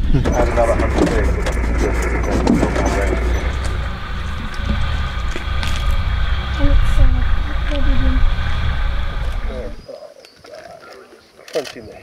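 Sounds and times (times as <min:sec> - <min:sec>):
vehicle engine running: 0:00.0 - 0:09.8
faint voices: 0:00.0 - 0:12.0.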